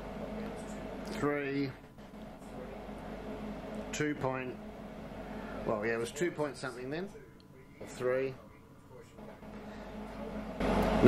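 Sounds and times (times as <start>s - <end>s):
mechanical hum and rumble: 0.0s - 11.0s.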